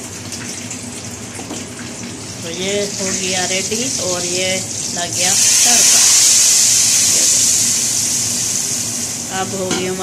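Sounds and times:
oil sizzling in a pot: 0.0s - 10.0s.

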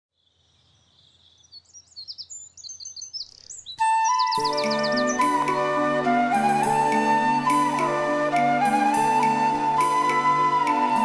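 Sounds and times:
high bird chirping: 0.2s - 5.8s
music: 3.8s - 11.0s.

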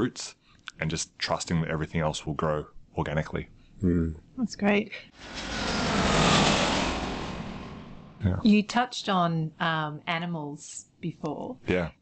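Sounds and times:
vehicle passing by: 5.2s - 8.3s.

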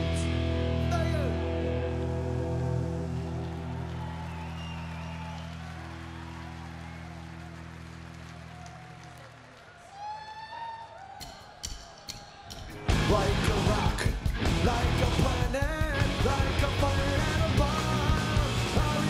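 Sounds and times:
crowd cheering and shouting: 2.0s - 19.0s
drumsticks clicking together: 11.2s - 12.8s.

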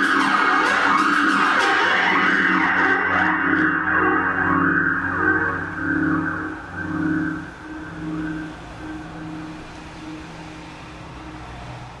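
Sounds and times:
distorted electric guitar pulsing: 0.0s - 11.1s.

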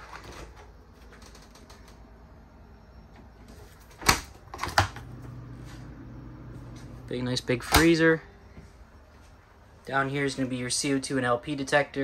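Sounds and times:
refrigerator low hum: 0.0s - 12.0s.

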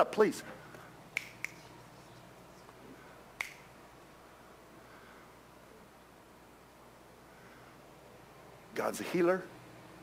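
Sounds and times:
finger snaps: 0.7s - 1.9s, 3.4s - 3.7s.

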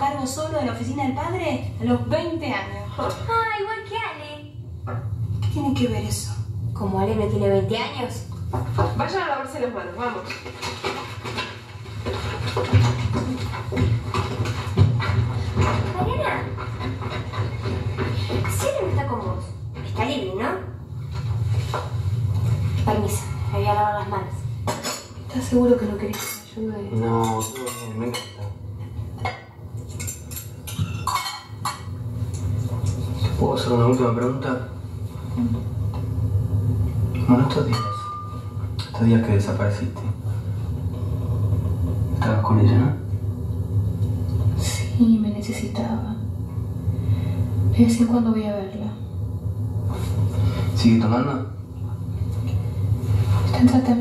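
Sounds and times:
low steady hum: 0.0s - 54.0s
plates and chairs clattering: 10.0s - 20.0s, 24.6s - 34.1s
low steady rumble: 28.1s - 54.0s.

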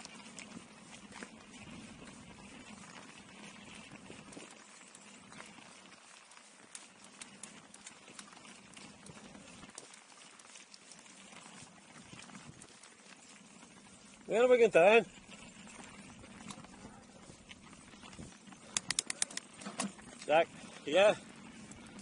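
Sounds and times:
bike clicks and rattles: 18.5s - 20.0s.

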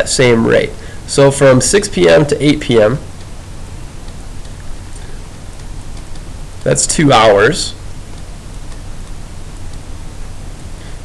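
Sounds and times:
low constant hum: 0.0s - 11.0s
recording hiss: 0.0s - 11.0s.

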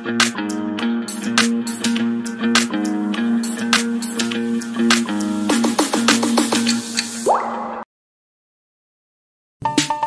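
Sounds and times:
water-drop blips: 7.2s - 7.9s.

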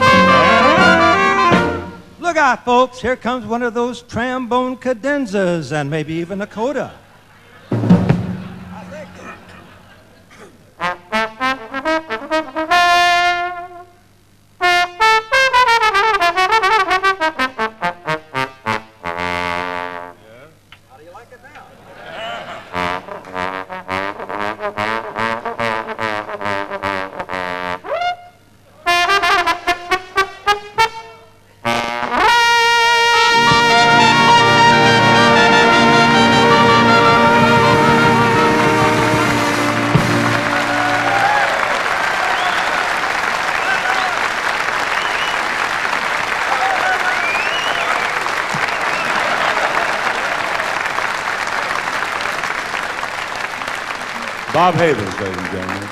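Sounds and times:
jazz trombone solo: 0.0s - 2.2s, 10.8s - 14.0s, 14.6s - 20.2s, 22.7s - 41.6s.

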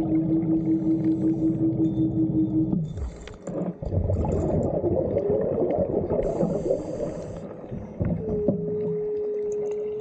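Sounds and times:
underwater scooter motor humming: 0.0s - 3.8s, 6.2s - 10.0s.

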